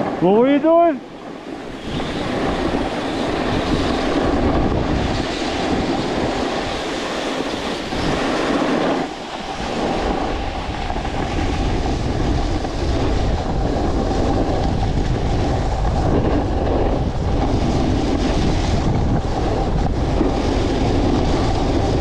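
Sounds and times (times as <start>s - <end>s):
wind rumbling on microphone: 0.0s - 22.0s
ski edges scraping snow: 1.5s - 22.0s.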